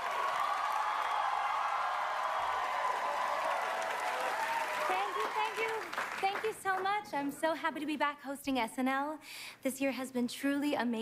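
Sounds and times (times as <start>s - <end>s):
audience applauding and cheering: 0.0s - 7.2s.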